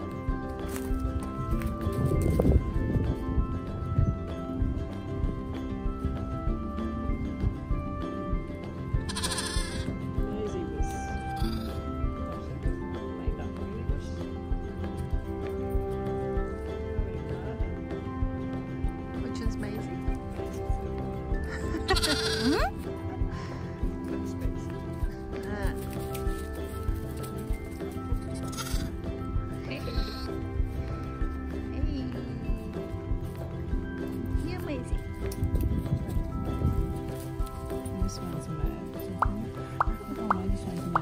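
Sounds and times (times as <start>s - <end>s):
background music with beat: 0.0s - 41.0s
lamb bleating: 9.0s - 9.9s, 11.4s - 11.9s, 21.8s - 22.6s, 28.4s - 29.0s.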